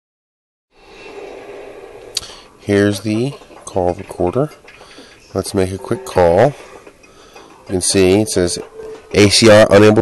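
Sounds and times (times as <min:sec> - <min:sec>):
faint hum: 0:00.8 - 0:10.0.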